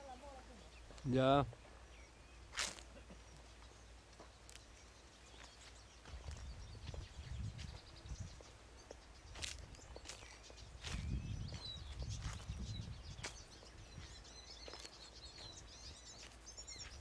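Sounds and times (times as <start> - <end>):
outdoor garden ambience: 0.0 - 17.0.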